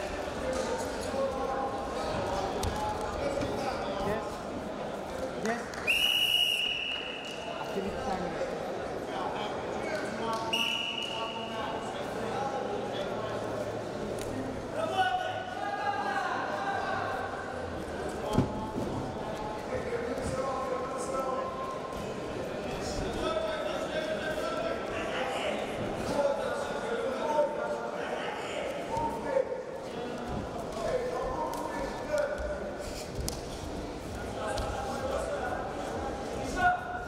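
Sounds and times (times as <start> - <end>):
referee whistle: 5.9 - 7.4, 10.5 - 11.5.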